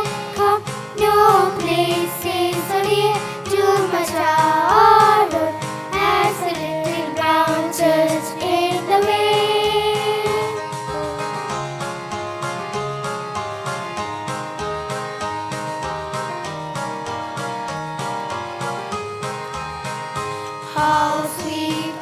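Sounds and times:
children's choir singing: 0.0s - 11.6s, 20.7s - 22.0s
music with rhythmic beat: 0.0s - 22.0s.

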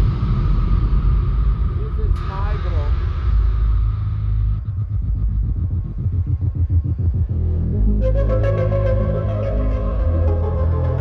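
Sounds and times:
electronic dance music: 6.3s - 11.0s.

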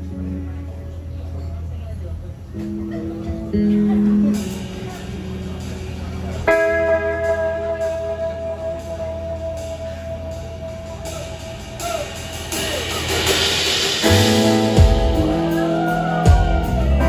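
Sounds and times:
electric guitar chord ringing: 2.5s - 11.8s, 14.0s - 17.0s.

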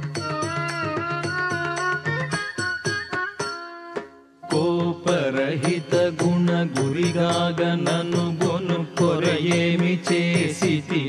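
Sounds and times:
percussion beats: 0.0s - 11.0s
devotional singing with vibrato: 4.4s - 11.0s.

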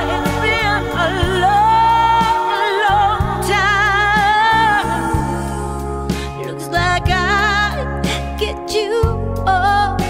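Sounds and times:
band with bass: 0.0s - 10.0s
woman singing with vibrato: 0.0s - 10.0s.

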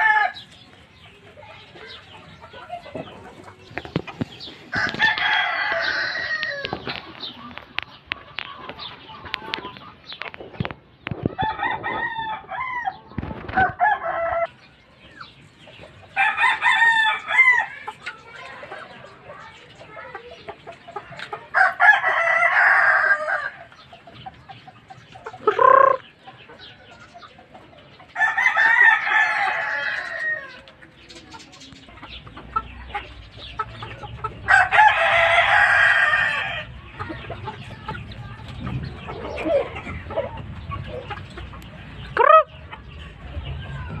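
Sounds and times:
roosters crowing: 0.0s - 0.7s, 4.4s - 7.5s, 11.2s - 14.7s, 16.1s - 17.9s, 21.5s - 23.8s, 25.4s - 26.9s, 28.1s - 30.8s, 33.4s - 37.6s
rooster clucking: 0.0s - 14.5s, 15.1s - 44.0s.

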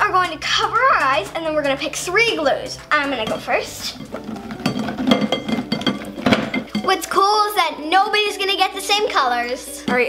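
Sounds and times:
plastic bottles clattering in glass bowl: 3.2s - 7.0s.

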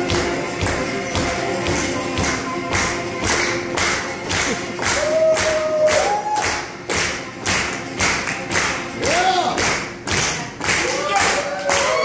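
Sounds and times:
thumping beat: 0.0s - 5.6s.

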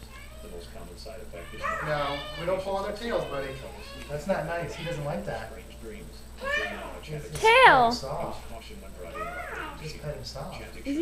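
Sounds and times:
cat meowing: 1.4s - 5.0s.

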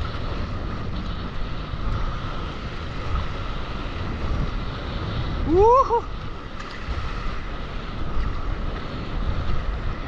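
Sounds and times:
water rushing and splashing: 0.0s - 10.0s
wind buffeting microphone: 0.0s - 10.0s.

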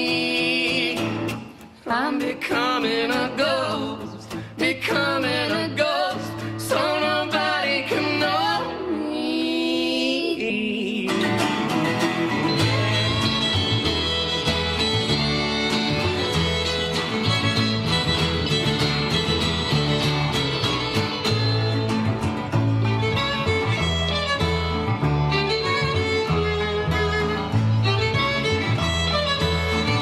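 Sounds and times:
fiddle: 0.0s - 9.8s, 11.1s - 30.0s
mandolin: 0.0s - 30.0s
acoustic guitar strumming: 11.1s - 30.0s
upright bass walking: 11.7s - 30.0s.

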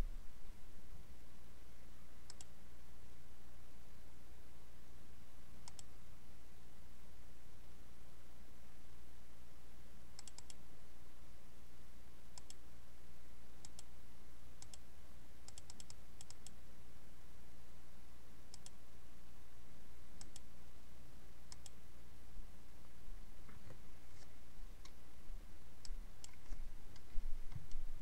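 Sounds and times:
low computer hum: 0.0s - 28.0s.

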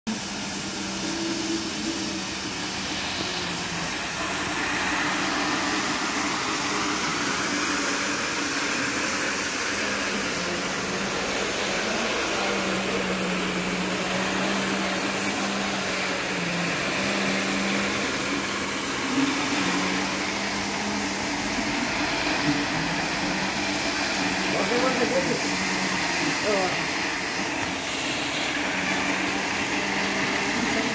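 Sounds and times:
floor scrubber motor hum: 0.1s - 30.9s
vacuum suction noise: 0.1s - 30.9s.

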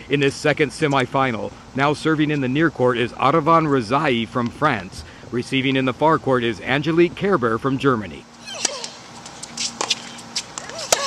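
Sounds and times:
tennis racket hitting ball: 8.6s - 11.0s.

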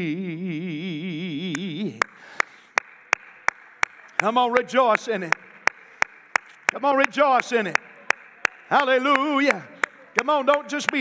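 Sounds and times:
person clapping hands: 1.6s - 11.0s.

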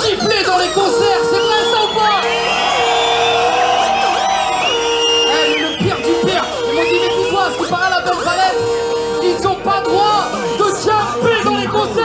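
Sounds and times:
crowd shouting and cheering: 0.0s - 12.0s
live music over sound system: 0.0s - 12.0s
held note repeating: 0.5s - 11.2s.

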